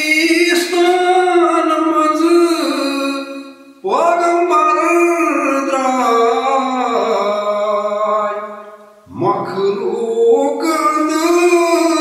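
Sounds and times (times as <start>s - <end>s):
man singing long bending notes: 0.0s - 12.0s.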